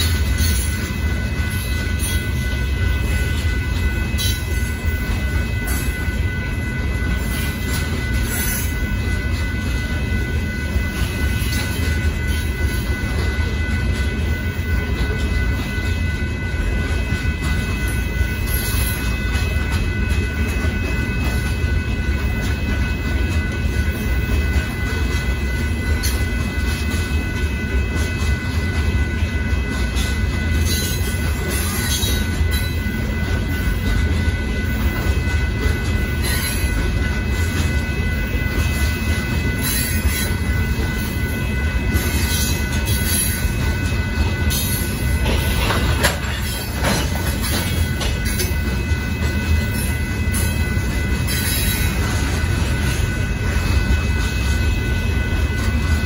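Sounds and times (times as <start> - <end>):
high-pitched wheel squeals: 0.0 - 56.0
train wheels rumbling on rail: 0.0 - 56.0.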